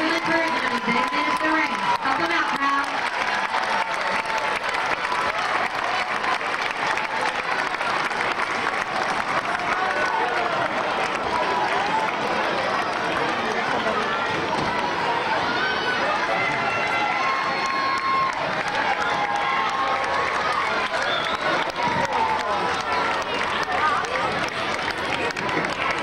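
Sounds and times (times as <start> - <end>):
crowd cheering and chattering: 0.0 - 26.0.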